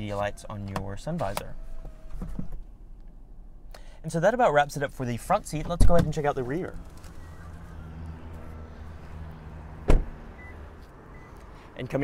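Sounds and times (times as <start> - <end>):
car door slamming: 5.6 - 6.2, 9.8 - 10.6.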